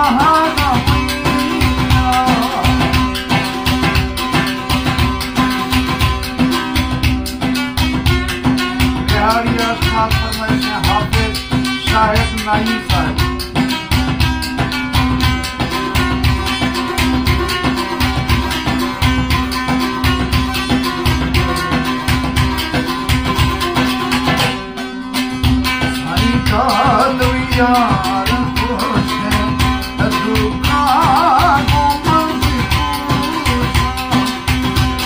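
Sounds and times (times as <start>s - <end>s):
folk music on strummed lutes: 0.0s - 35.0s.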